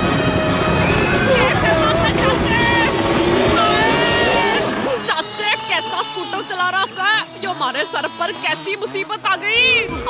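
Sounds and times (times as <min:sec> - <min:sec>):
scooter engine running: 0:00.0 - 0:09.9
cartoon character wailing: 0:00.5 - 0:09.0.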